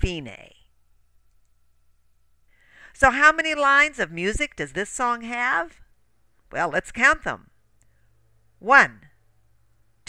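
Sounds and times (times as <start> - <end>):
faint steady hum: 0.0 - 10.0
person breathing in: 2.5 - 3.0.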